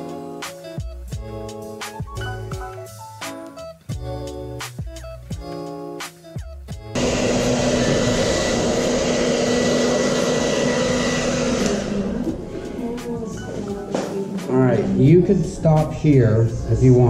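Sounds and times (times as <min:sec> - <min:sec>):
hair dryer blowing: 0:07.0 - 0:13.3.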